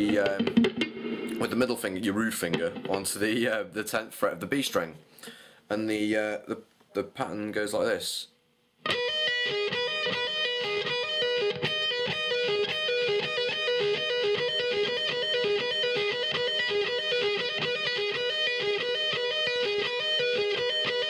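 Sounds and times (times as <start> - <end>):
electric guitar arpeggio: 8.8 - 21.0.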